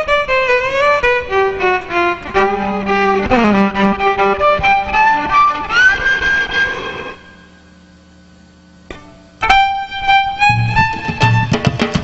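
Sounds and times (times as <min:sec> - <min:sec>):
violin melody: 0:00.0 - 0:06.6, 0:09.4 - 0:11.8
hand drums: 0:10.5 - 0:12.0.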